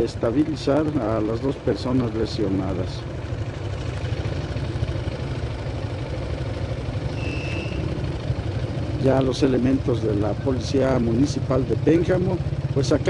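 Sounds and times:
vehicle engine idling: 0.0 - 13.0
short high beep: 7.1 - 7.9.

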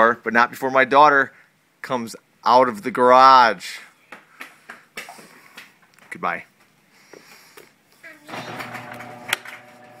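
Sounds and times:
garage door motor humming: 8.3 - 10.0.

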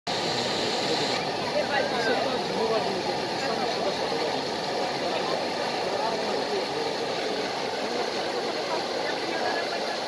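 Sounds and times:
fountain water splashing: 0.1 - 10.0
crowd chattering faintly: 0.2 - 10.0.

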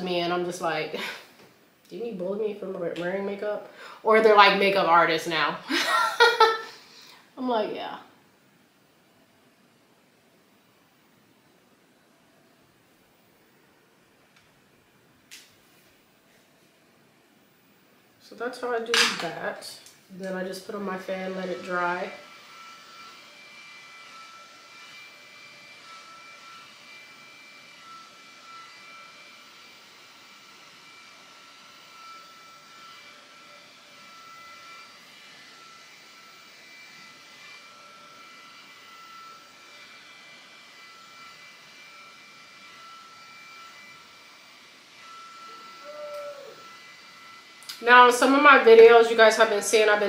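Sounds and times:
small fan whirring: 0.0 - 50.0
high motor whine: 17.6 - 50.0.

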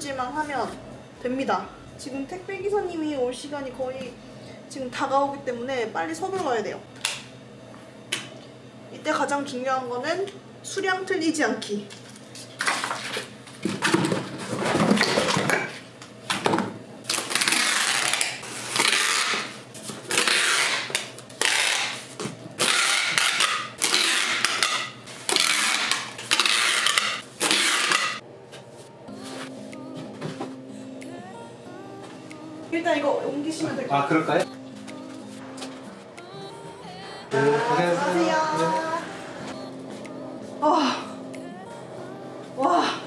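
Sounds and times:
packing tape pulled off roll: 17.0 - 28.2
faint steady hum: 28.2 - 43.0.

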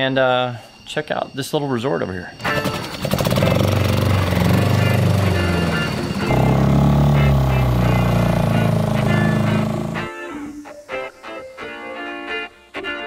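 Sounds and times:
outboard motor droning: 2.4 - 10.1.

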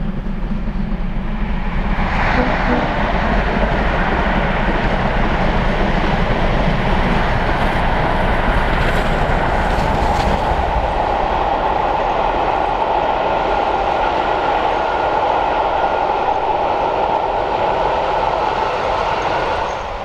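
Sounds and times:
steam locomotive low rumble: 0.0 - 20.0
train wheels rumbling on track: 0.0 - 20.0.

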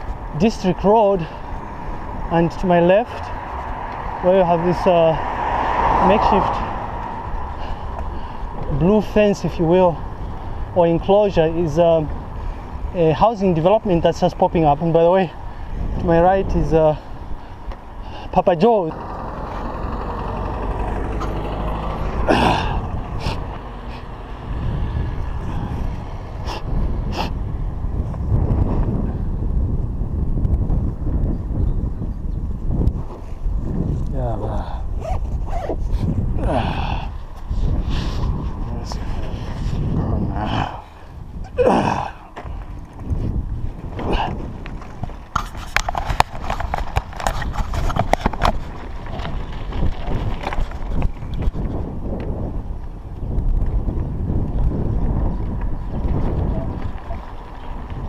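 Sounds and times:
bicycle road noise: 0.0 - 58.0
wind rumble on microphone: 0.0 - 58.0.

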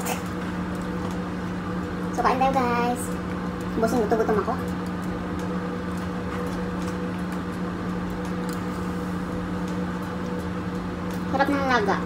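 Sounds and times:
low hum of room equipment: 0.0 - 12.0.

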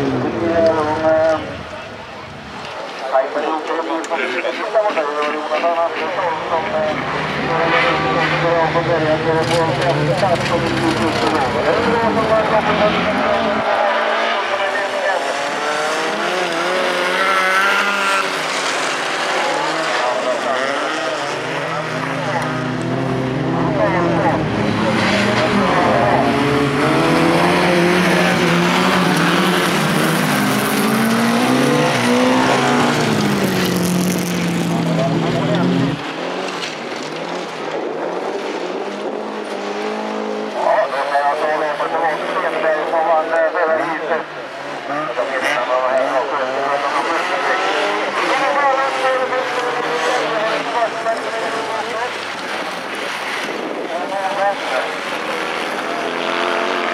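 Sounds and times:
race car engines revving: 0.0 - 56.9.

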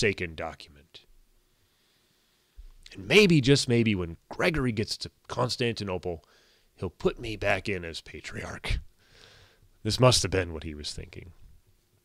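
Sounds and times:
man breathing: 1.4 - 2.8, 6.3 - 6.8, 9.0 - 9.8.

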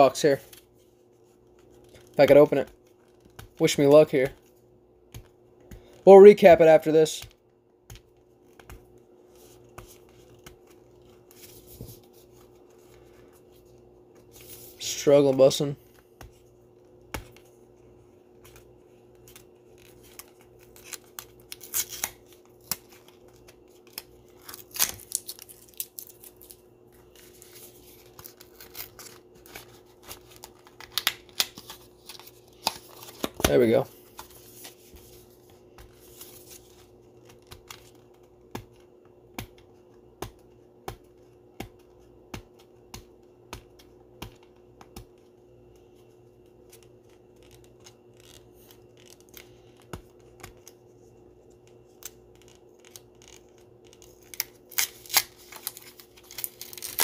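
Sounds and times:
packaging tearing and rustling: 19.7 - 34.9, 52.0 - 57.0.

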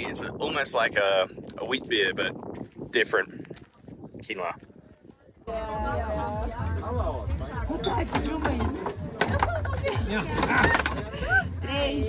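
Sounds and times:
people's voices: 4.3 - 12.0
background music: 5.5 - 12.0.

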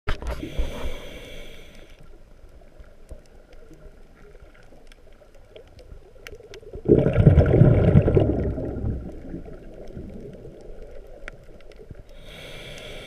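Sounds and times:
muffled underwater rumble: 0.1 - 13.0
hiss with steady tones: 0.3 - 3.7, 10.3 - 13.0.

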